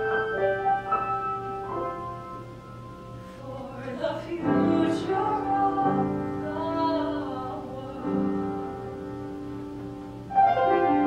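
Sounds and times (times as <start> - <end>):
piano accompaniment: 0.0 - 11.0
woman singing: 3.3 - 8.8.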